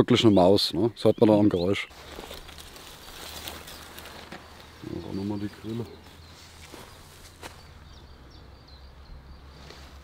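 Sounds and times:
rustling and light scraping: 0:01.9 - 0:07.8, 0:09.5 - 0:10.0.

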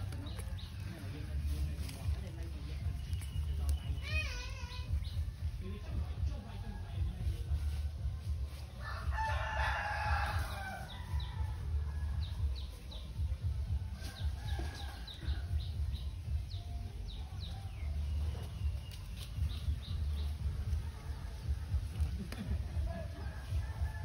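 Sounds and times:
rooster crowing: 0:08.8 - 0:11.9, 0:23.2 - 0:24.0
low rumble: 0:15.2 - 0:24.0.

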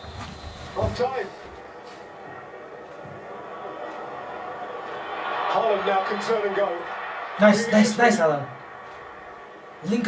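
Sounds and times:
low background murmur: 0:00.6 - 0:06.1.

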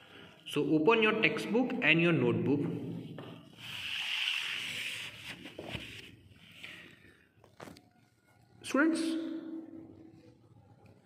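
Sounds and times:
paper rustling: 0:03.5 - 0:06.4.

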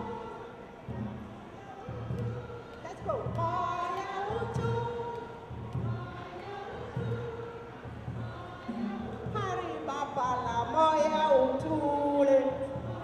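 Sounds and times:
woman singing into a microphone: 0:01.8 - 0:13.0.

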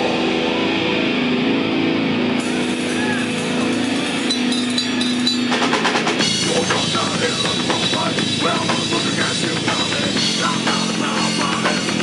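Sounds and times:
distorted guitars holding a chord: 0:00.0 - 0:12.0
rapid drum hits: 0:02.4 - 0:12.0.

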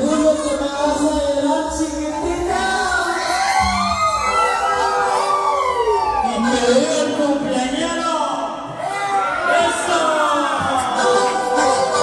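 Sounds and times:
voices wailing and shouting: 0:00.0 - 0:12.0
man yelling into a microphone: 0:06.1 - 0:12.0
crowd joining in: 0:08.6 - 0:12.0.

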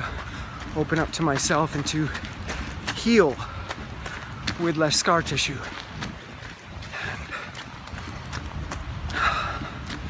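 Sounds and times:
footsteps on dirt trail: 0:00.0 - 0:10.0
runner breathing: 0:00.0 - 0:10.0
wind rumble on microphone: 0:00.0 - 0:10.0.

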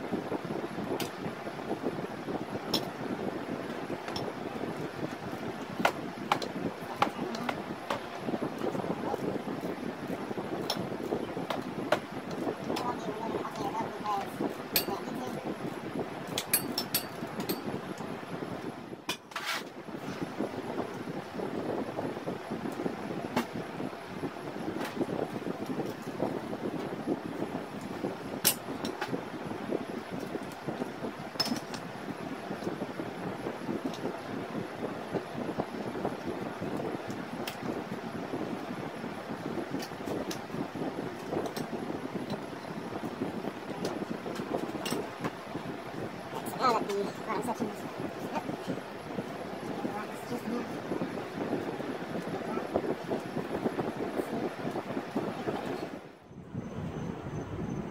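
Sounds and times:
mechanical background noise: 0:00.0 - 0:57.9.

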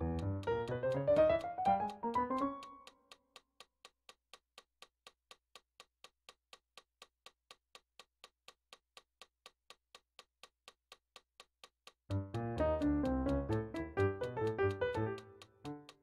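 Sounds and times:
faint steady ticking: 0:00.0 - 0:16.0.

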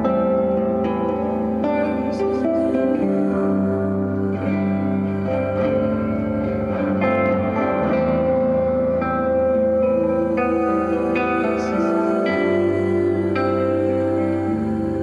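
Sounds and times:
ambient electric guitars: 0:00.0 - 0:15.0.

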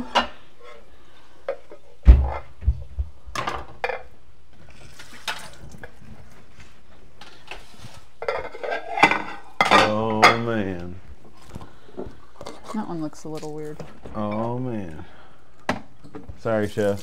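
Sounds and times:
ceramic plates knocking and clinking: 0:08.2 - 0:10.6.

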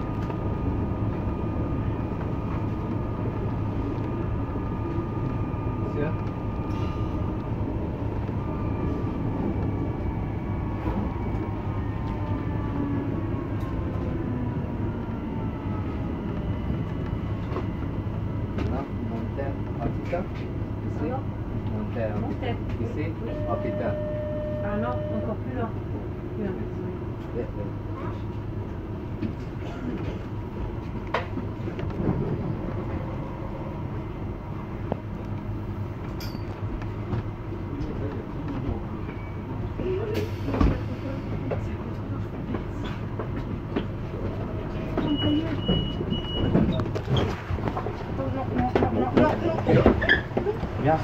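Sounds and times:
electric train hum: 0:00.0 - 0:51.0.

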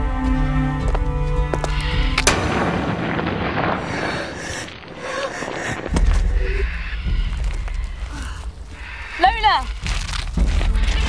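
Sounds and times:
music: 0:00.0 - 0:02.5, 0:05.9 - 0:11.0
loud blast bang: 0:02.2 - 0:04.4.

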